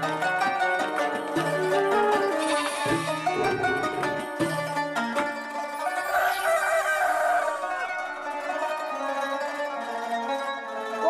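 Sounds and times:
plucked-string theme music: 0:00.0 - 0:11.0
wavering crow-like call: 0:05.8 - 0:07.8.

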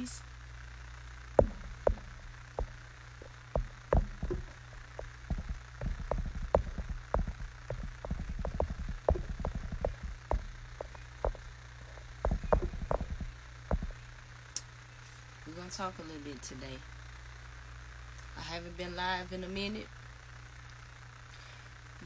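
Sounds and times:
steady low hum: 0:00.0 - 0:22.0
irregular light taps and clicks: 0:01.4 - 0:14.0.

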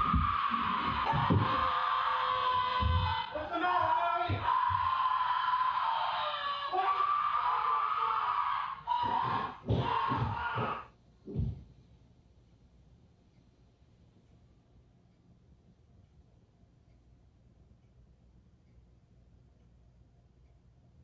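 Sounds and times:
man yelling: 0:00.0 - 0:10.8
woman screaming: 0:00.0 - 0:10.9.

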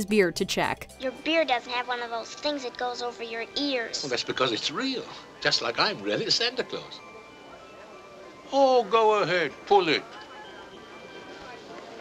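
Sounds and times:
faint steady tones: 0:01.0 - 0:12.0
film soundtrack hiss: 0:01.0 - 0:12.0.

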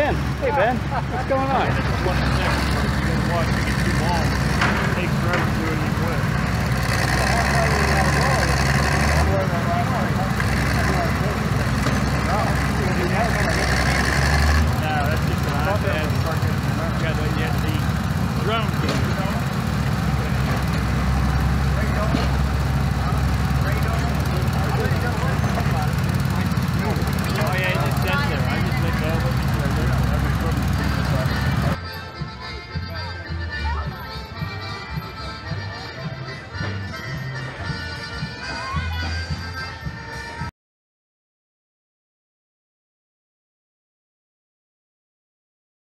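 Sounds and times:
small engines running: 0:00.0 - 0:40.2.

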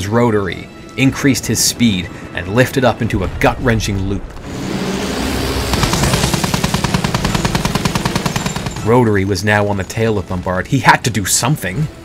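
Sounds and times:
propeller aircraft engine: 0:04.4 - 0:08.9
machine-gun fire: 0:05.5 - 0:09.0.

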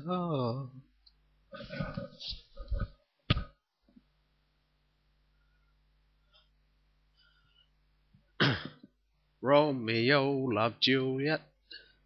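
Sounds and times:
man coughing: 0:08.4 - 0:09.0.

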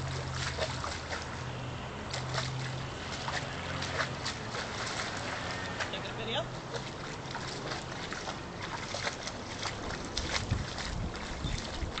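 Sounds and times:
dog splashing in water: 0:00.0 - 0:12.0
wind rumbling on microphone: 0:07.6 - 0:12.0.

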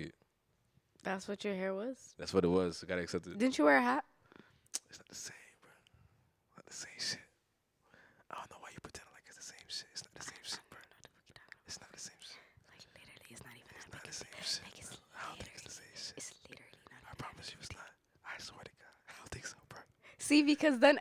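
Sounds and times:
person whispering: 0:04.8 - 0:05.8, 0:06.6 - 0:07.3, 0:08.3 - 0:19.9.

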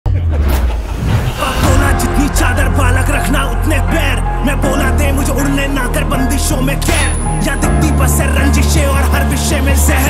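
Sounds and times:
heavy low rumble: 0:00.1 - 0:06.4
music: 0:00.1 - 0:10.0.

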